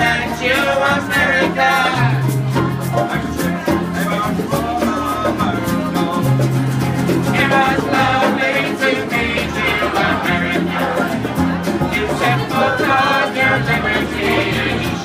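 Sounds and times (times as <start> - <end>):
man singing: 0.0 - 6.6, 7.2 - 11.2, 11.8 - 15.0
banjo: 0.0 - 15.0
strummed acoustic guitars: 0.0 - 15.0.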